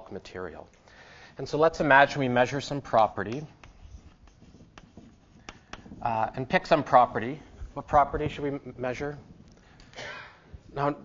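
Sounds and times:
chalk scratching on blackboard: 0:01.7 - 0:09.4
chalk tapping on board: 0:02.5 - 0:07.3.

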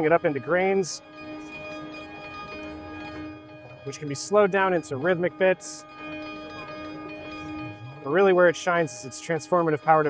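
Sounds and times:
synthesizer pad of held tones: 0:00.0 - 0:10.0.

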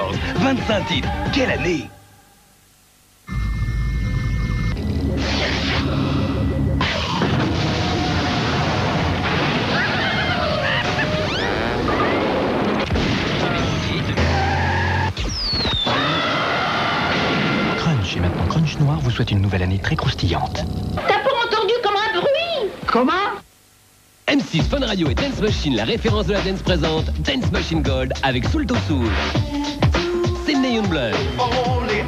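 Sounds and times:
deep boom: 0:17.1 - 0:19.4.

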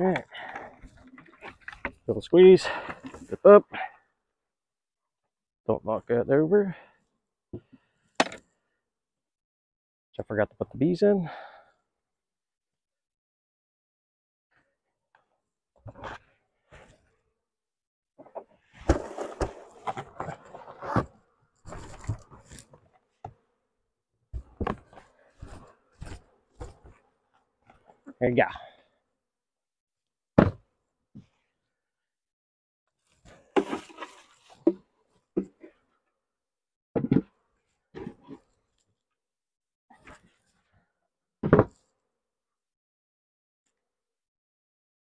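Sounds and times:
box rustling and knocking: 0:18.8 - 0:21.1.

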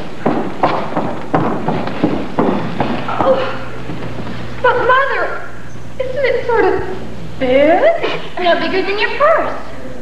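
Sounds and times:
footsteps on stage floor: 0:00.0 - 0:04.7.

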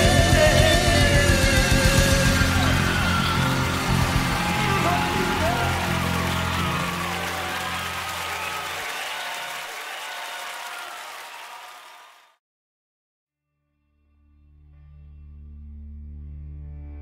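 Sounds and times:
bass guitar: 0:00.0 - 0:07.6
band playing gospel music: 0:00.0 - 0:10.7
people calling out: 0:00.0 - 0:10.8
congregation applauding: 0:00.0 - 0:12.4.

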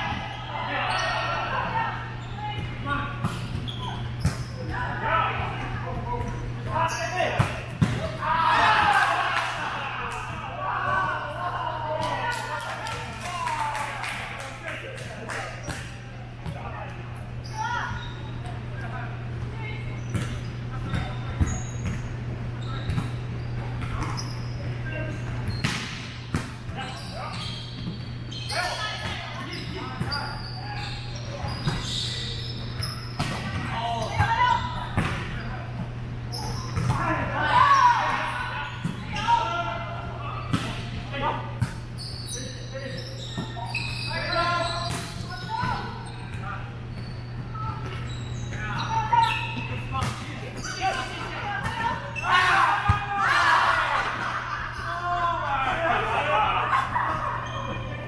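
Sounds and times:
players calling out: 0:00.0 - 0:21.7, 0:26.6 - 0:58.0.

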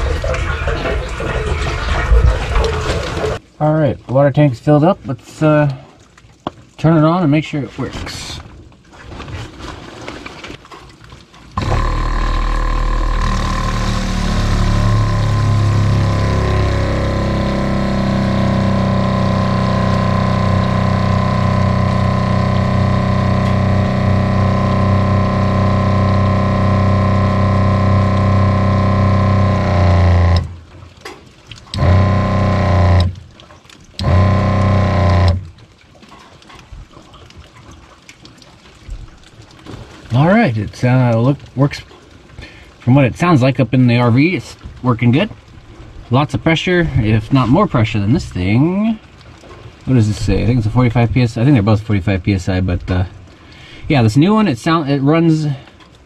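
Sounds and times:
water pump running: 0:00.0 - 0:03.5, 0:11.5 - 0:41.8, 0:46.0 - 0:55.7.

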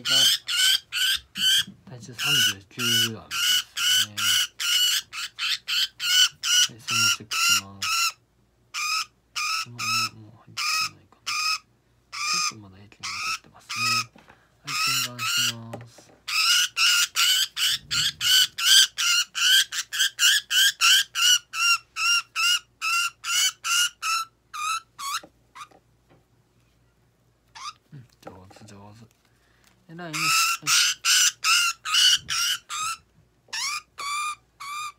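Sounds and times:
budgerigar squawking: 0:00.0 - 0:14.1, 0:14.7 - 0:15.6, 0:16.3 - 0:25.7, 0:27.6 - 0:27.8, 0:29.9 - 0:34.9.

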